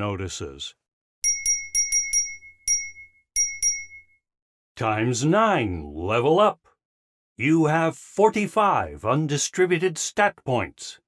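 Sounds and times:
bell-like notification chimes: 1.2s - 4.2s.

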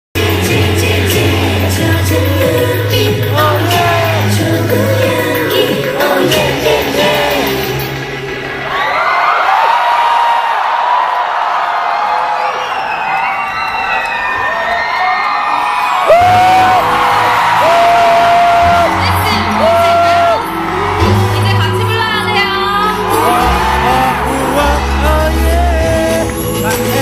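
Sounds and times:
girl group singing: 0.2s - 8.0s, 22.3s - 26.3s
amplified backing track: 0.2s - 8.6s
crowd cheering and screaming: 0.2s - 27.0s.

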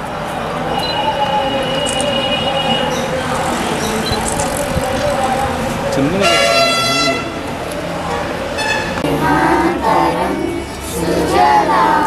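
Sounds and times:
group singing in unison: 9.0s - 12.0s.

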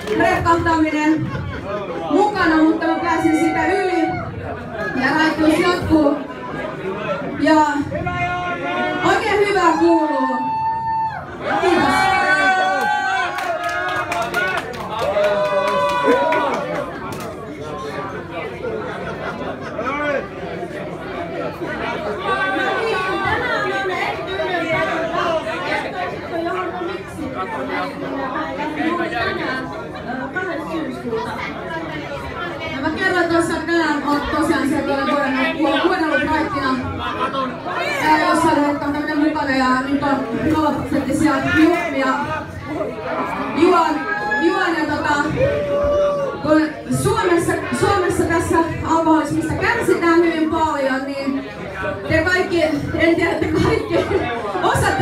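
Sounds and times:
murmur of audience chatter: 0.0s - 55.0s.

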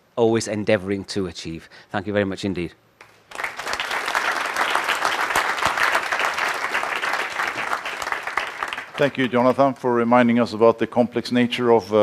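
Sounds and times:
audience applauding: 3.3s - 9.8s.

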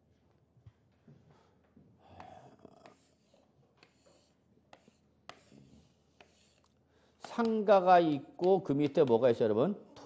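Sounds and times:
chalk on chalkboard: 2.8s - 7.7s.

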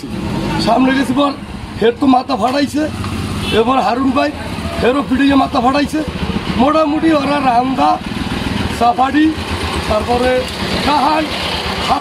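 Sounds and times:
man talking: 0.0s - 8.1s, 8.7s - 12.0s
vehicle engine rumbling: 0.0s - 12.0s.

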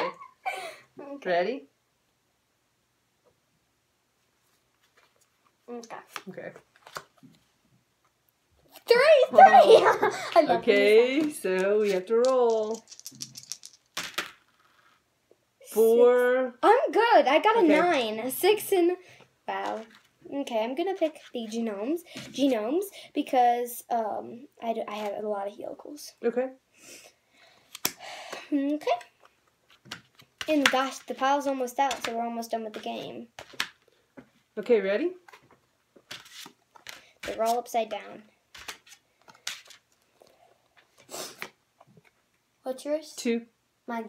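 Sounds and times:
cards rustling and tapping: 4.8s - 7.5s, 10.8s - 15.0s, 27.7s - 34.3s, 35.2s - 40.2s
dice clattering on table: 11.2s - 15.0s
dice rattling in hands: 11.2s - 15.0s.

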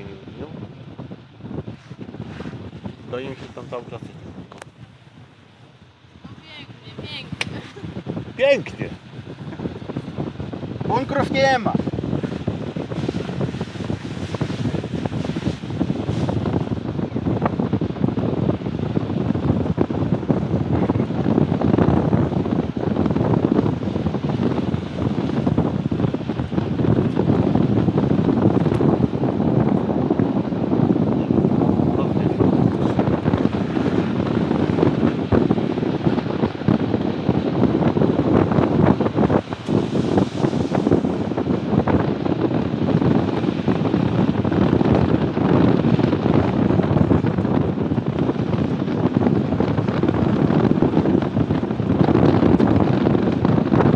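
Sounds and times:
wind buffeting microphone: 0.0s - 53.9s.

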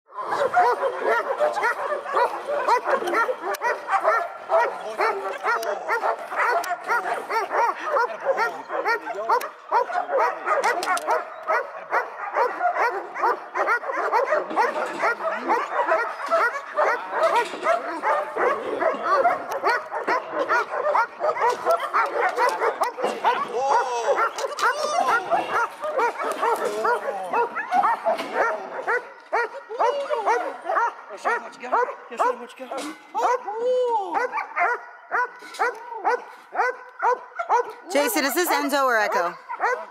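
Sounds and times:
dog barking and whining: 0.1s - 33.5s, 34.2s - 39.9s.

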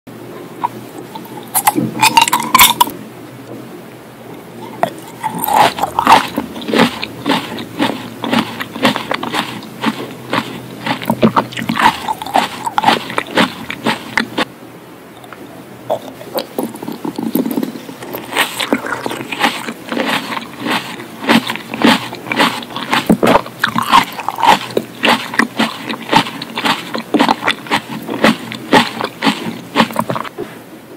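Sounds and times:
mouth chewing tomato: 0.5s - 3.0s, 4.6s - 14.5s, 15.2s - 30.4s.

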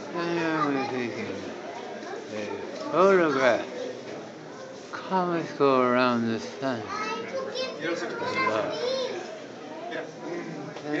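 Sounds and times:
crowd chatter in a hall: 0.0s - 11.0s
children's voices: 0.2s - 3.7s, 6.8s - 9.4s.

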